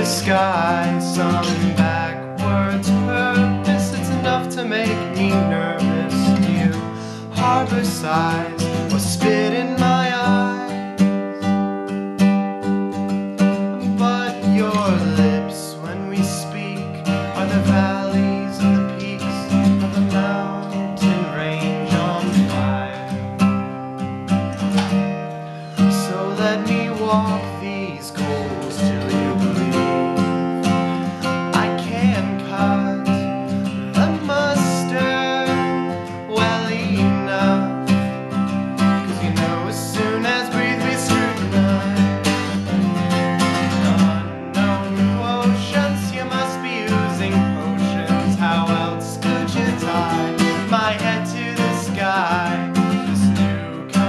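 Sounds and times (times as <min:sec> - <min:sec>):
man singing: 0:00.0 - 0:11.6, 0:13.4 - 0:23.7, 0:25.6 - 0:54.0
acoustic guitar strumming chords: 0:00.0 - 0:54.0.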